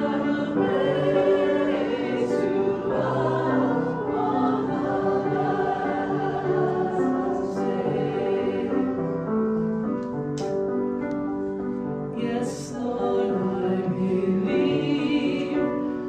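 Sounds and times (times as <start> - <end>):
choir singing sacred music: 0.0 - 9.9, 12.1 - 16.0.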